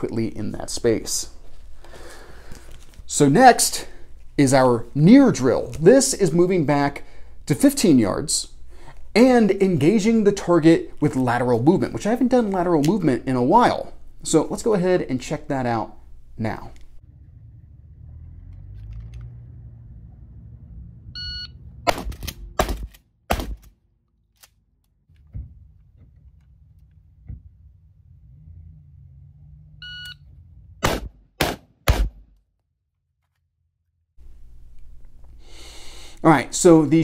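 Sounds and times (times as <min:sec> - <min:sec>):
shotgun shots: 0:21.9 - 0:23.7, 0:30.8 - 0:32.2
shot timer beep: 0:29.8 - 0:30.2
rifle shots: 0:30.8 - 0:32.2.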